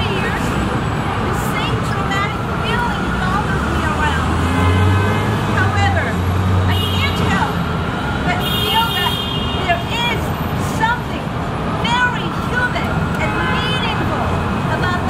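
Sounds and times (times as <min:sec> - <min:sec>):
woman reading aloud: 0:00.0 - 0:00.6, 0:01.2 - 0:07.6, 0:08.2 - 0:15.0
passing vehicle engine rumble: 0:00.0 - 0:08.8
city street traffic: 0:00.0 - 0:15.0.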